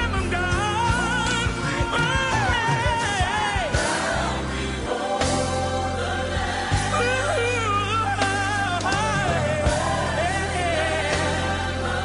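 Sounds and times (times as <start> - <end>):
choir singing gospel: 0.0 - 12.0
steady bass accompaniment: 0.0 - 12.0.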